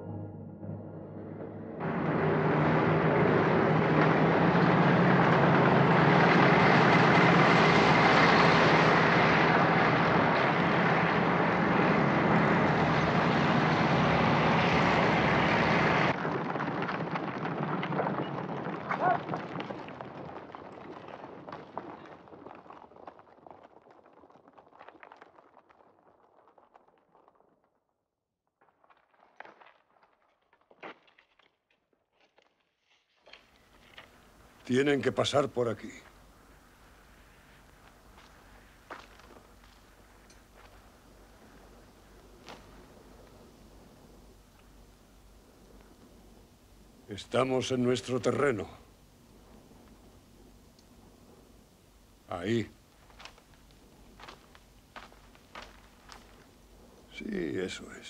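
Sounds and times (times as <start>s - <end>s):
truck engines droning: 1.0s - 16.1s
galloping horses hoofbeats: 1.8s - 27.5s, 33.6s - 57.6s.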